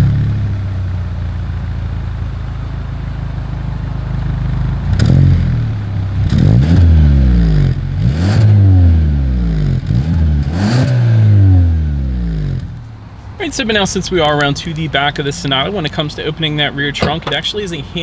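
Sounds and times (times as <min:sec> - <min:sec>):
car engine idling and revving: 0:00.0 - 0:13.4.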